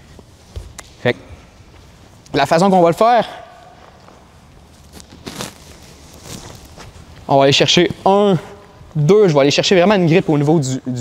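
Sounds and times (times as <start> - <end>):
bare feet on gym mats: 0.0 - 2.2, 3.7 - 8.0.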